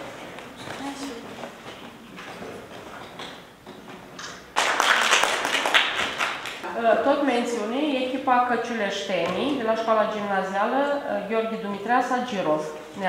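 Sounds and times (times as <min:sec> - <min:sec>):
group of people clapping: 0:04.2 - 0:06.6.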